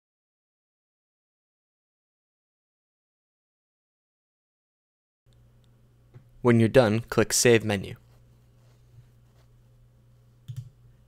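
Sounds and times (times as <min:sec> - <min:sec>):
faint low hum: 0:05.3 - 0:11.0
computer mouse click: 0:10.5 - 0:10.8.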